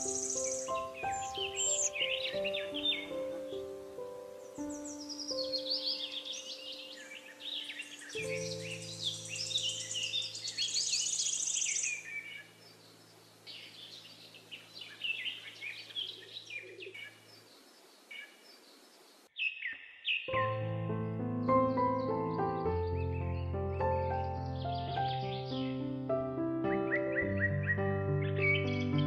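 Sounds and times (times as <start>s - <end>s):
soft held piano chord: 0.0s - 10.9s, 20.4s - 29.0s
songbirds chirping and trilling: 0.0s - 29.0s.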